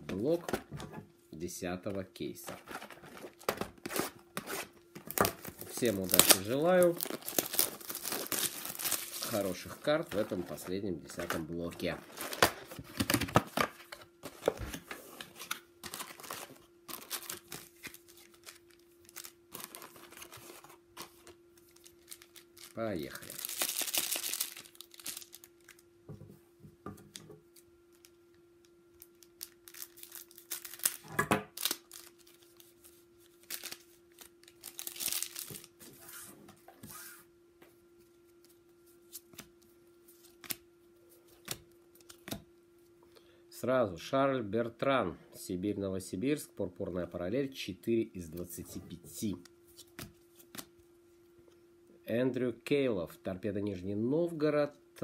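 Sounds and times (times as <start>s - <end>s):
steady low hum: 0.0s - 55.0s
cards being handled: 2.4s - 25.7s
foil wrappers crinkling and tearing: 2.6s - 25.9s, 29.0s - 36.3s.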